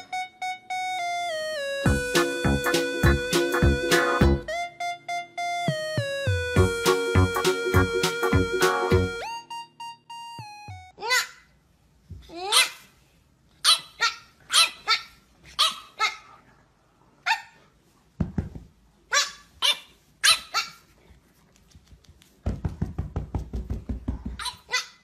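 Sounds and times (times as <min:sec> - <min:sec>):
piano music: 0:00.0 - 0:11.0
puppy yapping: 0:13.6 - 0:16.3, 0:19.1 - 0:20.9.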